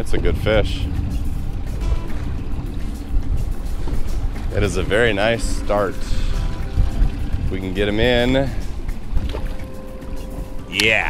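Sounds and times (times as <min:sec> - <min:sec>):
waves against boat: 0:00.0 - 0:11.0
wind rumble: 0:00.0 - 0:11.0
outboard motor running: 0:00.1 - 0:10.7.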